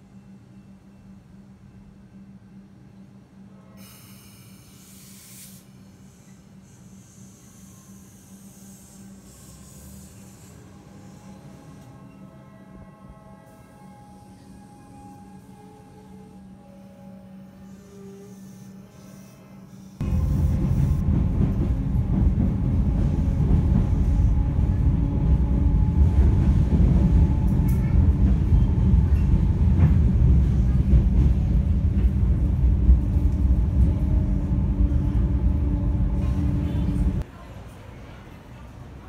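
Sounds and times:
train wheels rumbling on rails: 20.0 - 37.3.

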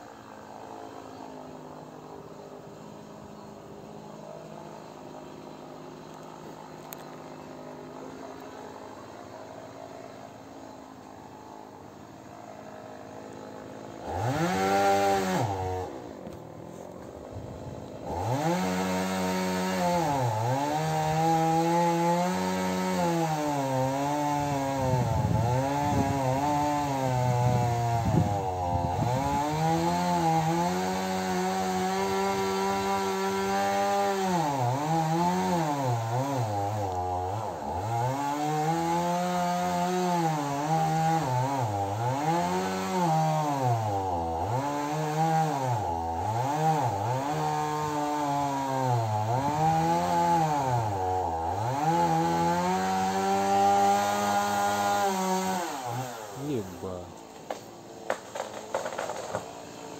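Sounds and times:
chainsaw cutting wood: 0.0 - 59.9.

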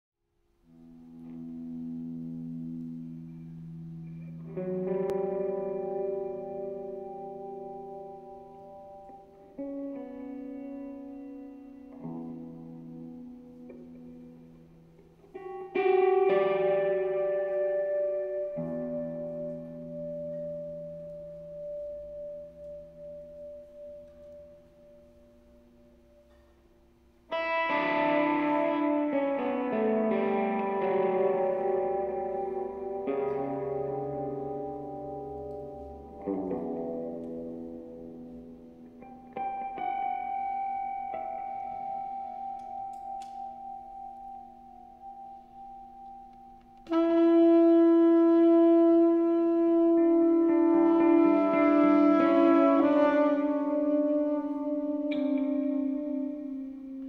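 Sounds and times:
electric guitar chords: 0.6 - 57.0.

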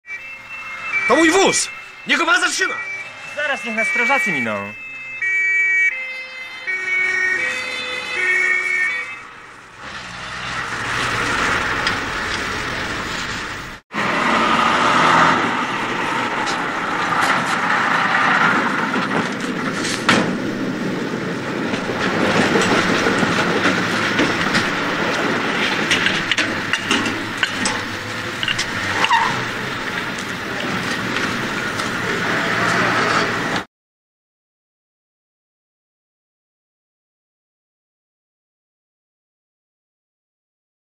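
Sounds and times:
two-tone fire engine siren: 0.0 - 33.7
scattered knocks: 21.7 - 30.1.

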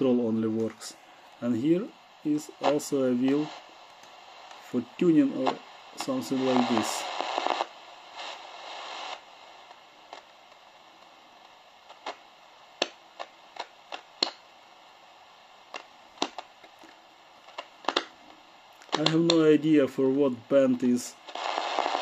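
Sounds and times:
radio static hiss: 0.0 - 22.0
sharp clicks and crackles: 12.8 - 14.4, 15.7 - 18.1.

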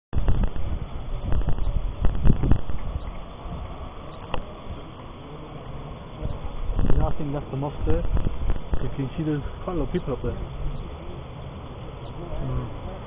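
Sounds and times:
wind rumbling on microphone: 0.1 - 13.0.

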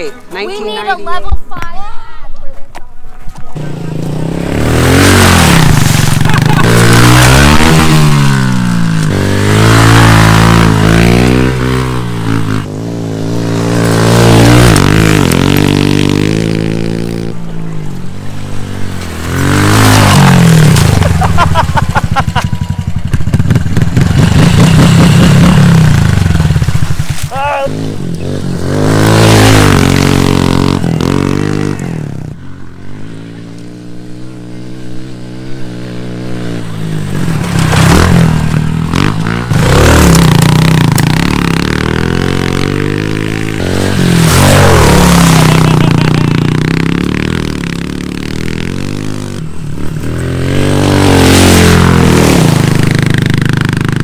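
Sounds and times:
motorbike engine revving hard: 3.6 - 17.4, 18.3 - 54.0.

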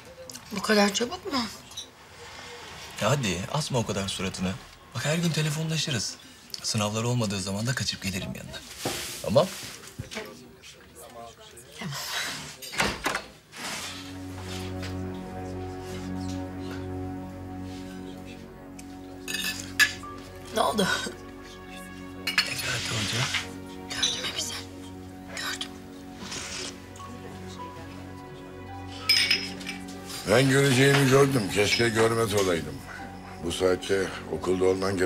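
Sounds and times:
soft background music: 0.0 - 9.6, 13.4 - 35.0
glass tableware clink: 19.3 - 20.0, 22.2 - 22.7, 29.0 - 29.8.

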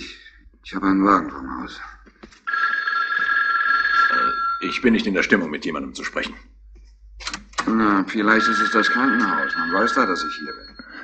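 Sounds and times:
telephone bell ringing: 2.5 - 4.9, 8.3 - 11.0.

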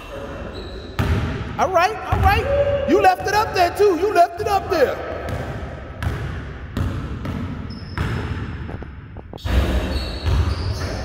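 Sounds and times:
basketball bouncing on wooden floor: 5.1 - 9.4, 10.1 - 11.0.

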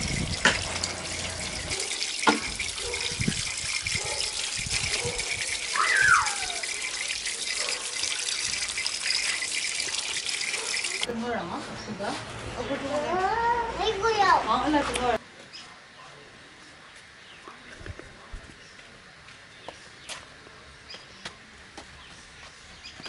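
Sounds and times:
tap water splashing: 0.0 - 11.1.

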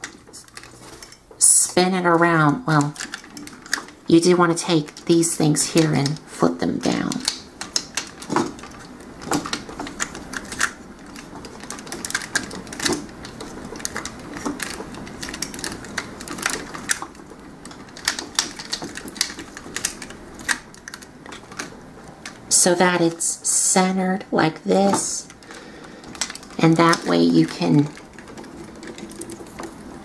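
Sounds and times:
plastic toy parts clicking: 1.8 - 23.1, 24.9 - 29.9.

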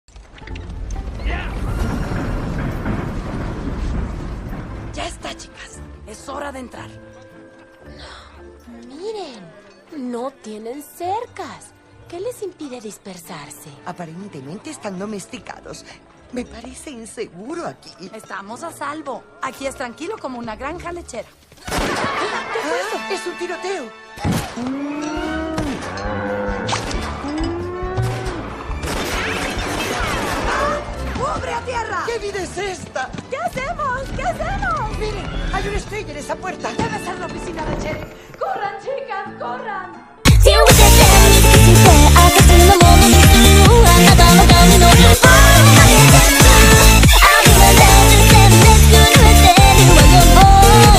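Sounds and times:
wagon rolling low rumble: 0.2 - 6.5
action music: 0.4 - 9.5, 21.7 - 32.6, 40.2 - 50.9
cartoon crashing: 1.0 - 5.7, 26.6 - 30.9
cartoon music: 40.3 - 50.9.

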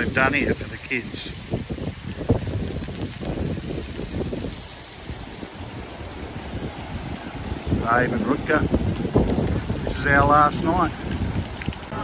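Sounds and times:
faint water splashing: 0.0 - 12.0
wind gusting on microphone: 0.0 - 12.0.

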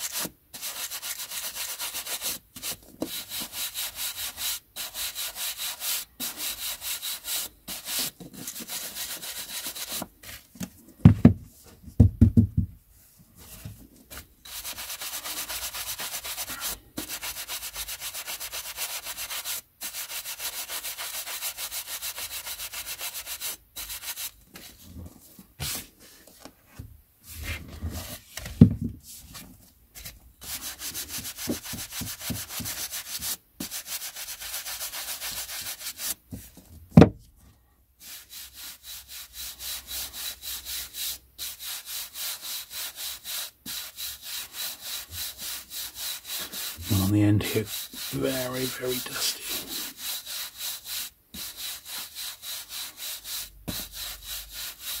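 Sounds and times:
bristle brush sweeping paper edges: 0.0 - 10.5, 13.0 - 26.5, 27.2 - 36.6, 38.0 - 55.0.

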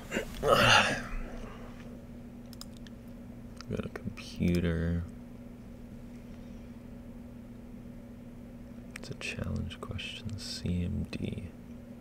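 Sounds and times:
steady low hum: 0.0 - 12.0
person muttering in whispers: 0.1 - 1.2.

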